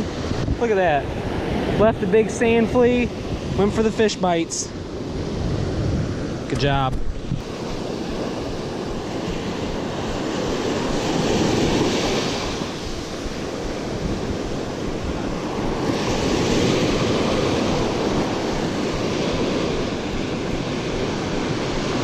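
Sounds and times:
ocean surf breaking on sand: 0.0 - 22.0.

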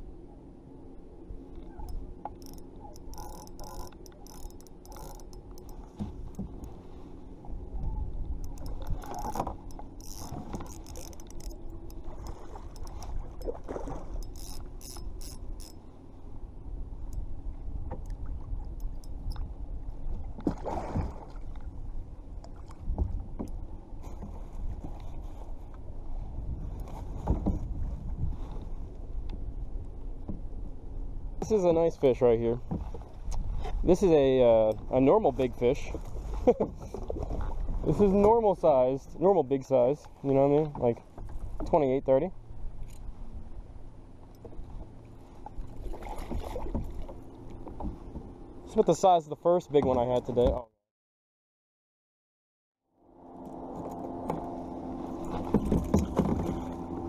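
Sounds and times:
fishing reel gear hum: 1.2 - 20.1, 42.2 - 48.8, 53.1 - 57.0
water splashing: 8.6 - 14.8, 20.0 - 23.4, 44.1 - 48.3, 53.6 - 57.0
wind buffeting microphone: 24.4 - 31.5.

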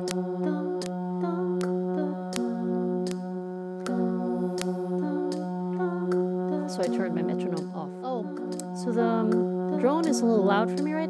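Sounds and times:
bending vocal sounds: 0.0 - 3.1, 3.8 - 11.0
vocal drone with harmony tones: 0.0 - 11.0
vocal percussion: 0.0 - 11.0.

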